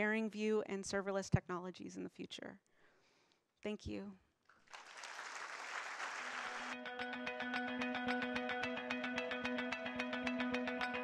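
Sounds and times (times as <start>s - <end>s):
audience applauding: 4.6s - 6.8s.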